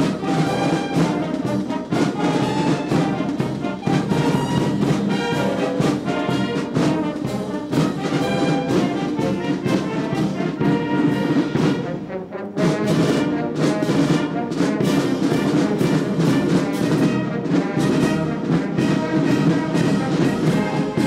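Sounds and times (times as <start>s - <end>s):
military brass band playing: 0.0s - 21.0s.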